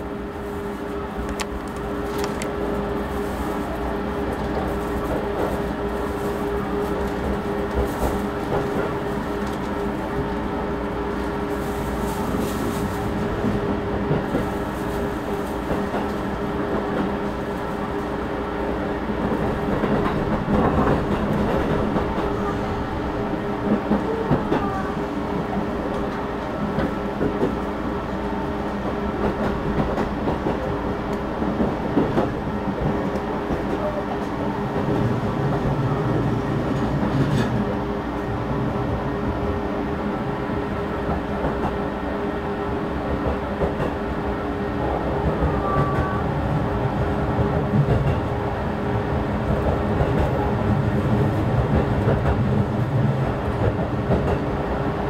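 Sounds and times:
train running rumble and hum: 0:00.0 - 0:55.0.

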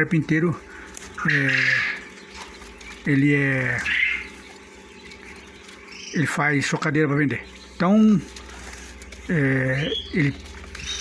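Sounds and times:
faint steady hum: 0:00.0 - 0:11.0
quail chicks peeping: 0:00.0 - 0:11.0
loud chirp: 0:00.7 - 0:11.0.

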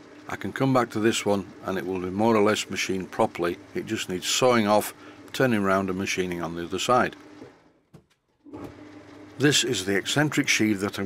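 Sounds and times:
metal lathe running: 0:00.0 - 0:07.6, 0:08.6 - 0:11.0.

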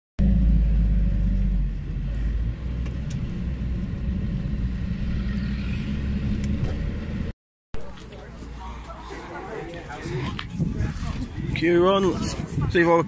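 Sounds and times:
taxi road and engine rumble: 0:00.2 - 0:12.7.

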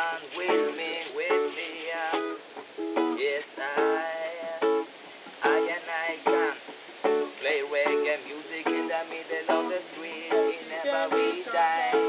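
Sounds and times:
acoustic guitar reggae strumming: 0:00.0 - 0:12.0.

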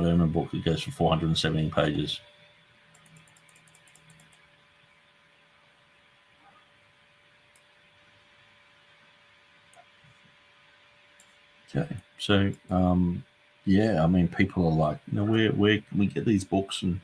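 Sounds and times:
faint electrical hum: 0:00.0 - 0:17.0
faint clicks: 0:02.9 - 0:04.5.

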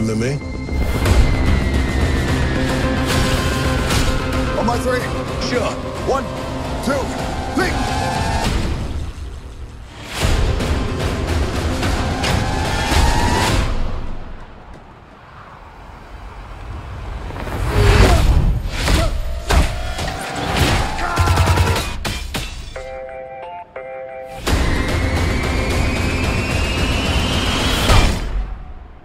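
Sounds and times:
action trailer music: 0:00.0 - 0:14.5, 0:18.2 - 0:23.0, 0:24.4 - 0:29.0.

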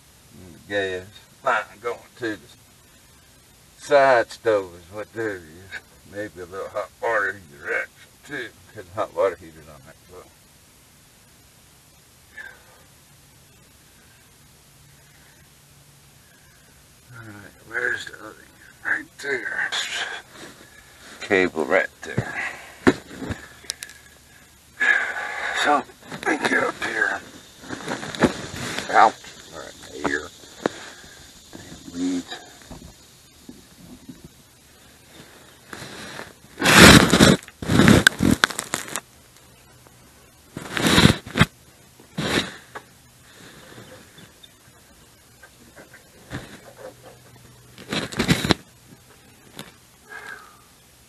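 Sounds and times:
indistinct talking: 0:24.8 - 0:32.9.

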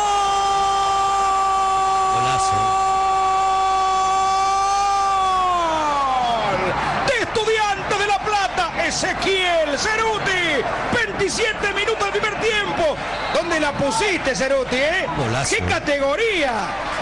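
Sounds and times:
commentator's long goal shout: 0:00.0 - 0:12.9
excited shouting: 0:00.0 - 0:16.8.

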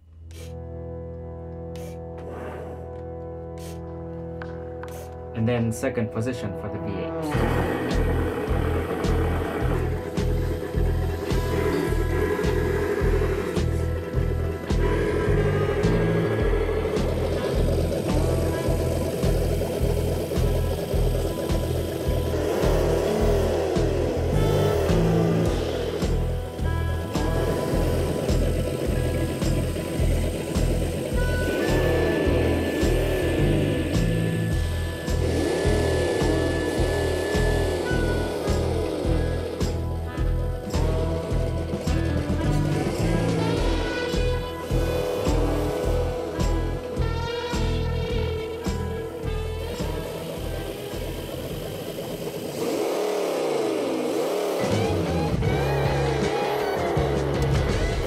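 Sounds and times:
background music with steady beat: 0:00.0 - 0:53.0
toy car engine sound revving: 0:07.2 - 0:58.0.

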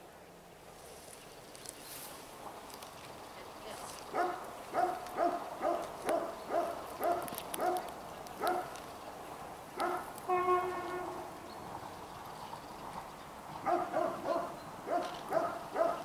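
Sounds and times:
dog barking: 0:04.1 - 0:08.8, 0:09.8 - 0:10.1, 0:13.6 - 0:16.0.

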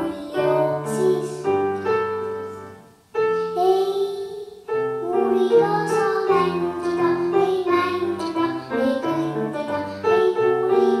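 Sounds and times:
girl singing into a microphone: 0:00.0 - 0:02.7, 0:03.3 - 0:11.0
recorded musical backing track: 0:00.0 - 0:11.0.

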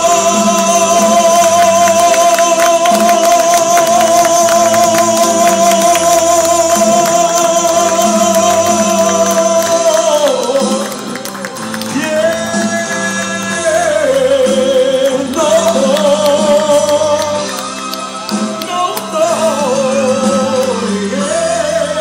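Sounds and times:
karaoke pop ballad backing track: 0:00.0 - 0:22.0
man singing into a microphone: 0:00.0 - 0:22.0.

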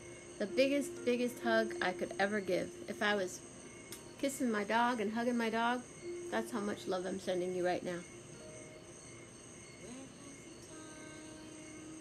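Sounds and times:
crickets chirping: 0:00.0 - 0:12.0
soft background music: 0:00.0 - 0:12.0.

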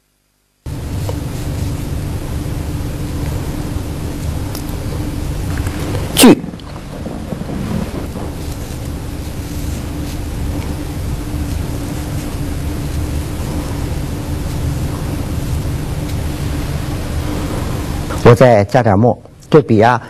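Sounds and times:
background hiss: 0:00.0 - 0:20.0
low constant hum and rumble: 0:00.5 - 0:20.0.

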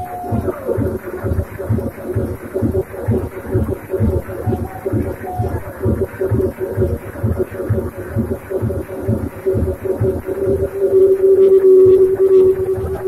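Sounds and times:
kick-drum pulse: 0:00.0 - 0:13.0
held synth note: 0:10.4 - 0:13.0.

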